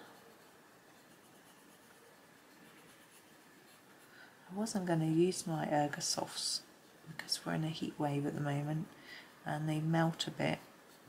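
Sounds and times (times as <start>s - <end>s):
pencil scratching on paper: 0.0s - 4.2s.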